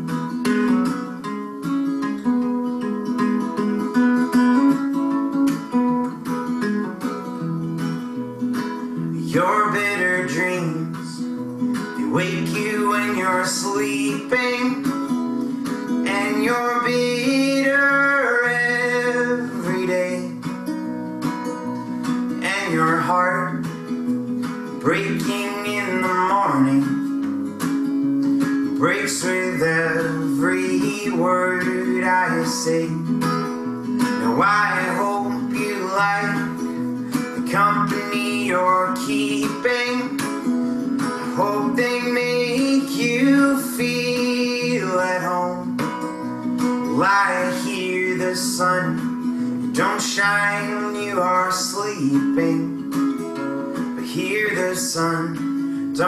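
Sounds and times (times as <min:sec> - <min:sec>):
strummed acoustic guitar: 0:00.0 - 0:56.0
man singing: 0:08.6 - 0:20.8, 0:21.5 - 0:56.0.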